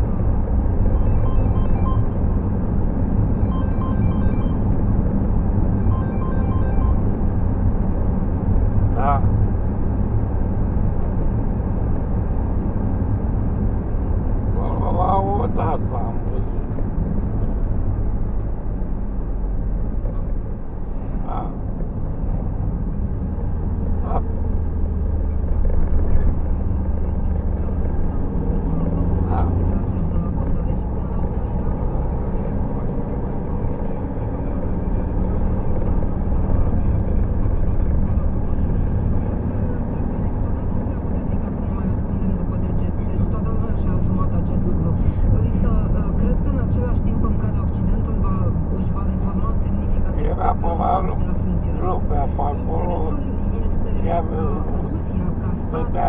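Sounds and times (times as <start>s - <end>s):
vehicle engine and tyre rumble: 0.0s - 56.0s.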